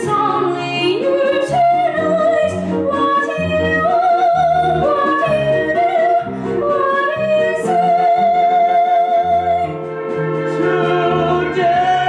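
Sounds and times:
woman singing with vibrato: 0.0 - 9.8
instrumental accompaniment: 0.0 - 12.0.

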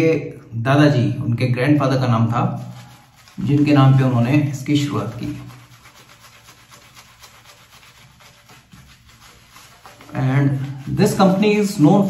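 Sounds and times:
shaving brush rubbing lather: 2.3 - 12.0.

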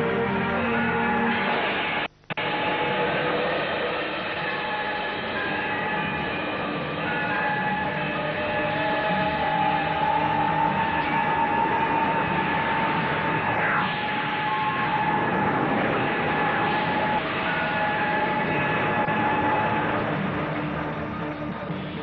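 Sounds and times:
dense rushing noise: 0.0 - 22.0
sustained synthesizer tones: 0.0 - 22.0.

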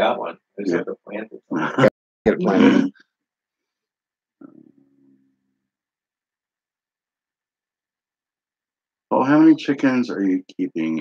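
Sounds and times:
faint low voice hum: 0.0 - 2.9, 9.1 - 11.0.

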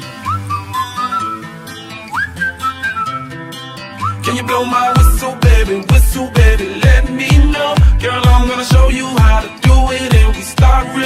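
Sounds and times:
whistled melody: 0.0 - 6.8
pop backing music with bass and beat: 0.0 - 11.0.

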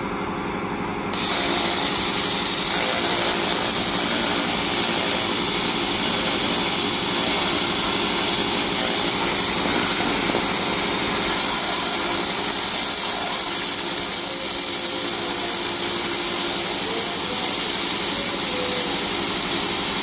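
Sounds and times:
steady machine hum: 0.0 - 20.0
laser cleaner hissing: 1.1 - 20.0.

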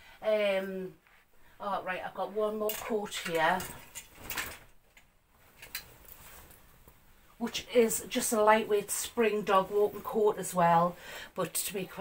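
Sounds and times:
fabric rustling: 2.3 - 7.3.

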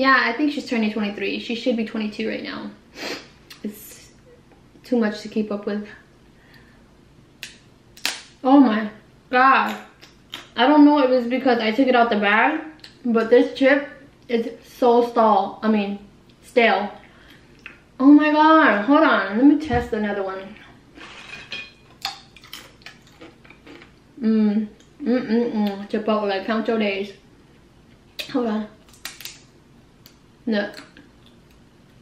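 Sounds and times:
chip being chewed with crunches: 22.0 - 24.0.

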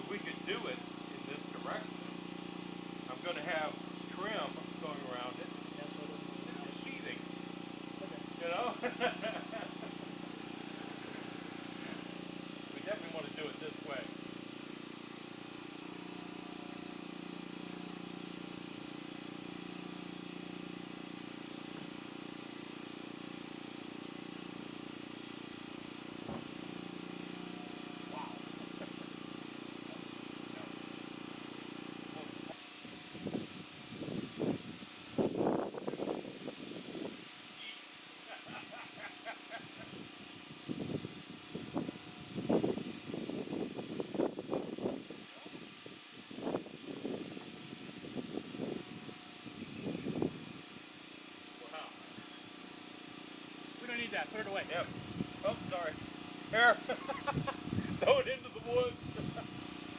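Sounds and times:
voices: 0.0 - 2.0, 3.1 - 7.3, 7.9 - 14.2, 53.8 - 59.4
low engine-like drone: 0.0 - 17.3, 25.9 - 31.1.

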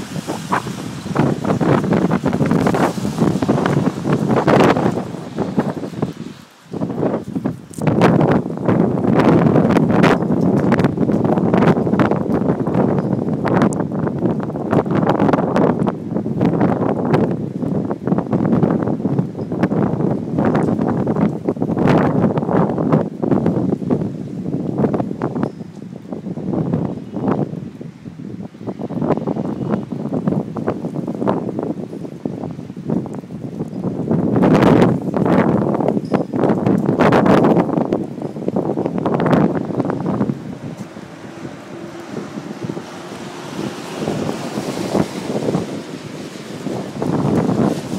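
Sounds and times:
gusty wind buffeting microphone: 0.0 - 47.9.

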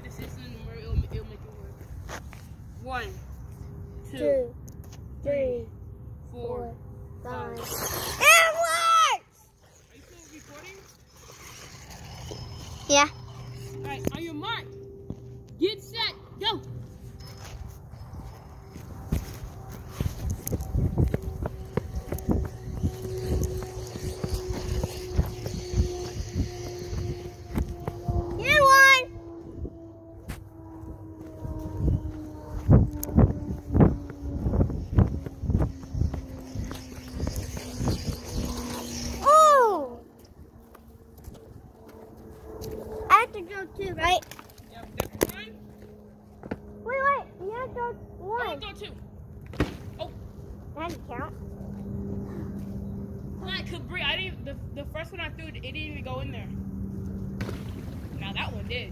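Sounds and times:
short high-pitched squeals: 7.6 - 15.4.

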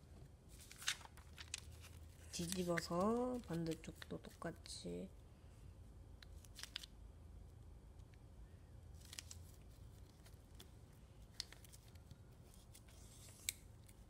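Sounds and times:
foil paper crinkling: 0.6 - 4.1.

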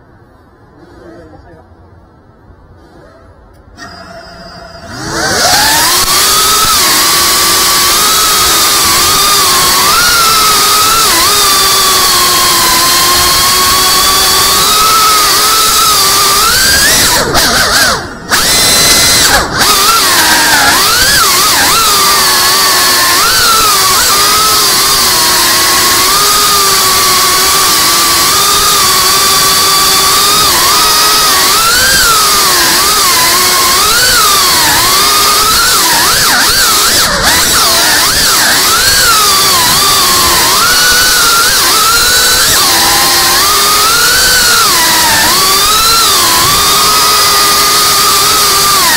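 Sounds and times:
drone motors whining: 2.7 - 48.9.

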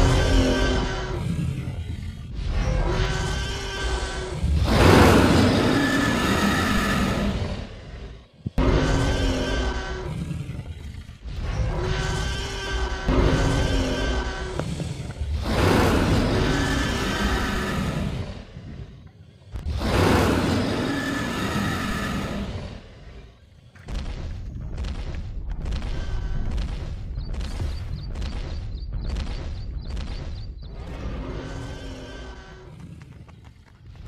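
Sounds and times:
dinosaur roar: 0.0 - 23.4
harsh dinosaur roar: 19.6 - 23.3.

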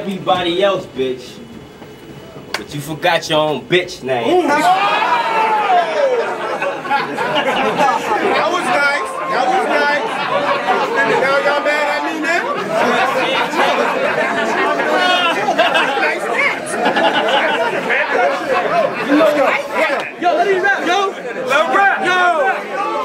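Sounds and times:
crowd talking and calling out: 0.0 - 23.0.

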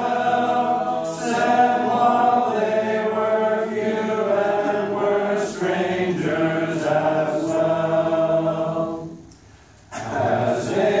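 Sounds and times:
congregation singing unaccompanied: 0.0 - 11.0.

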